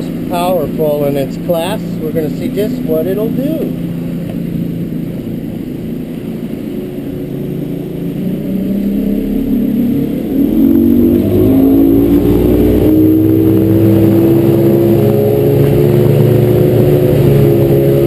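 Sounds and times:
outboard motor accelerating: 0.0 - 18.0.

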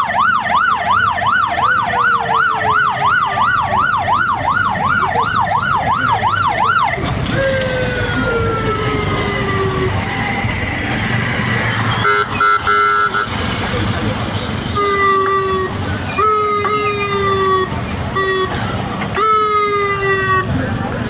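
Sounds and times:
police siren yelping: 0.0 - 13.3, 14.6 - 20.6
rumble of vehicles: 0.0 - 21.0.

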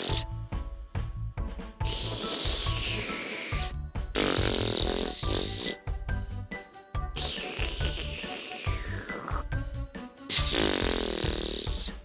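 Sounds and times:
background music with beat: 0.0 - 12.0
swishing hiss: 1.9 - 3.7
mouth rinsing gurgle: 7.2 - 9.4.

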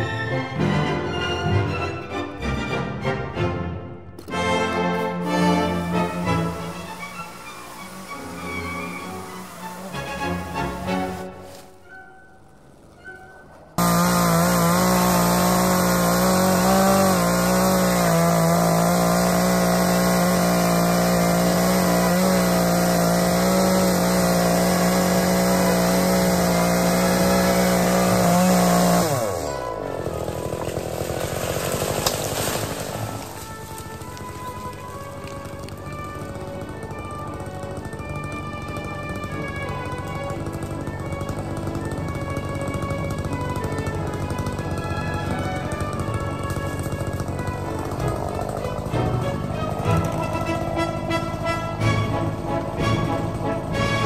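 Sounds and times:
background music: 0.0 - 31.0, 32.7 - 54.0
chainsaw cutting through trunk: 4.2 - 11.7, 13.8 - 54.0
tree top crashing through foliage: 13.8 - 50.6.

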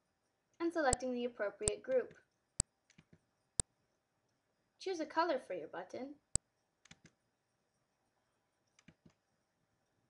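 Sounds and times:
computer mouse clicks: 0.9 - 3.7, 6.8 - 7.2, 8.6 - 9.3.

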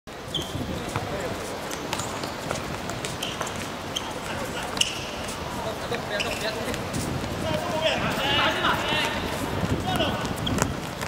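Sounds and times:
players calling out: 3.1 - 10.7.

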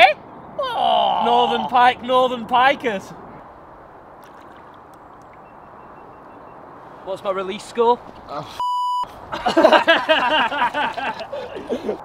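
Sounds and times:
faint clicks: 4.2 - 5.5.

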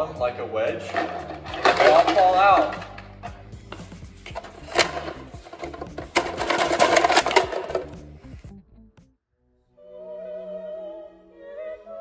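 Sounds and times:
music: 0.0 - 12.0
plastic blocks clattering in tube: 0.8 - 3.4, 4.3 - 8.0.

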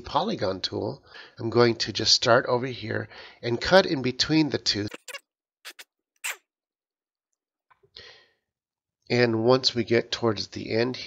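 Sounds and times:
soft breathy noise: 7.9 - 8.4.

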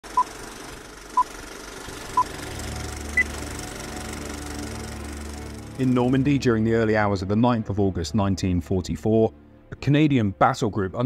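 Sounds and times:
low music drone: 2.0 - 10.4.

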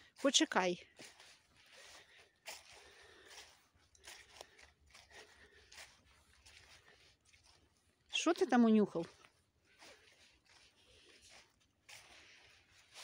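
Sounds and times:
footsteps crunching through leaves: 0.0 - 13.0.

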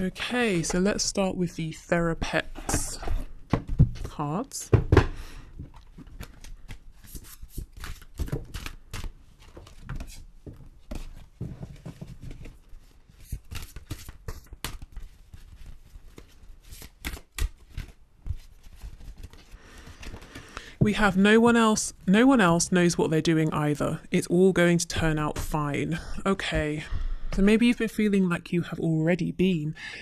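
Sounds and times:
cards being shuffled: 5.6 - 20.7.

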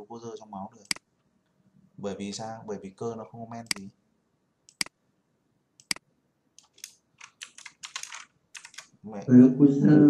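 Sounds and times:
typing on computer keyboard: 6.6 - 9.0.

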